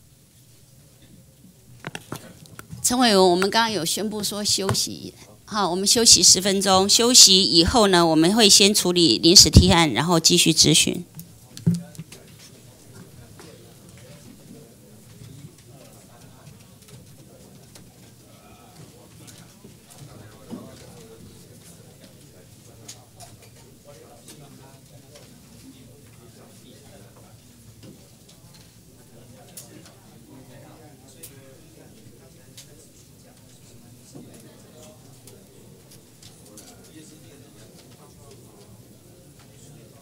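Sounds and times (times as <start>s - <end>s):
murmur of people talking: 0.0s - 40.0s.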